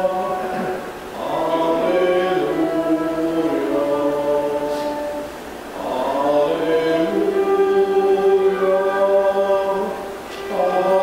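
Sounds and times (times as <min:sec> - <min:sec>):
choir singing a chant: 0:00.0 - 0:11.0.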